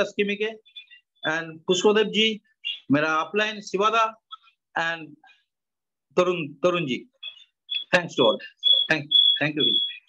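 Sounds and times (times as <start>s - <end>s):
voice: 0.0s - 5.3s, 6.2s - 10.0s
electronic beeping: 7.2s - 10.0s.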